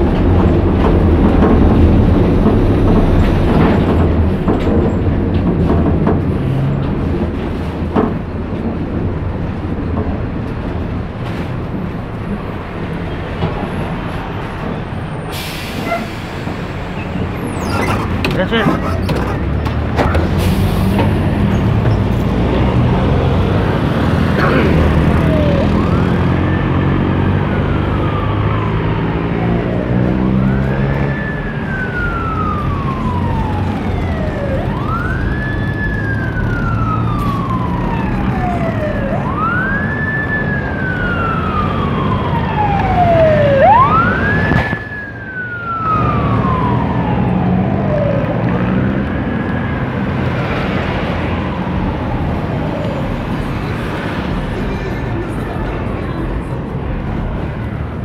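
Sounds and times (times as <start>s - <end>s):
road traffic rumble: 0.0s - 58.0s
emergency siren wailing: 20.4s - 54.6s.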